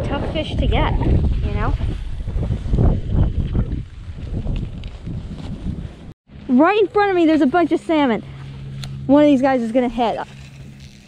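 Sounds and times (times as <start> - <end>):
wind buffeting microphone: 0.0 - 6.2.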